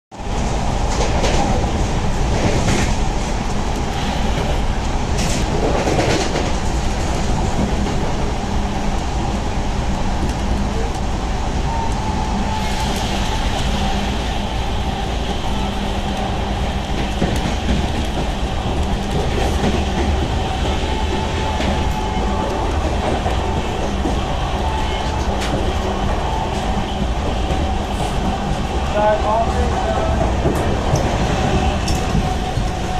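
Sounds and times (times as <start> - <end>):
train wheels rumbling on rail: 0.1 - 32.9.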